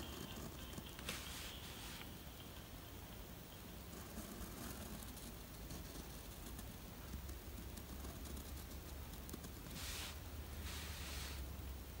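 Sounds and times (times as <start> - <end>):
low steady hum: 0.0 - 12.0
pen scratching on paper: 3.9 - 6.7.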